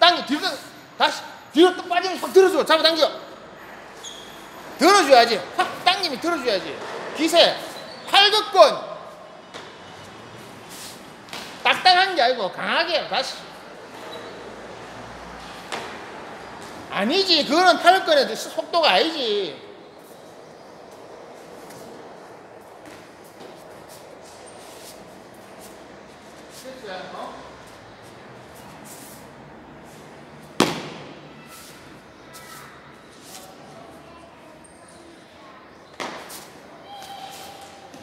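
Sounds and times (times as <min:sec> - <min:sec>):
faint background noise: 0:00.0 - 0:38.0
sharp smack: 0:30.6 - 0:31.2.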